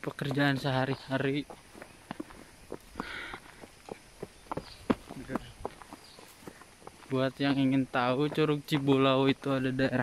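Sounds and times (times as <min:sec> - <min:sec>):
irregular footsteps and scuffs: 0:00.0 - 0:10.0.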